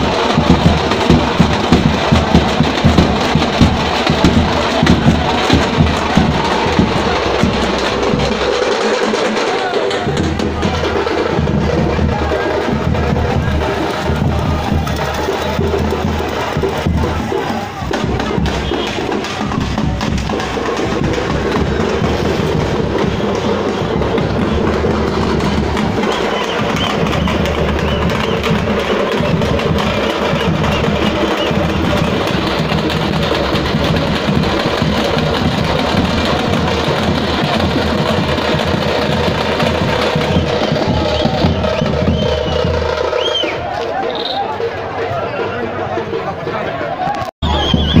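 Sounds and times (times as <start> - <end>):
fast frame drumming: 0.0 - 48.0.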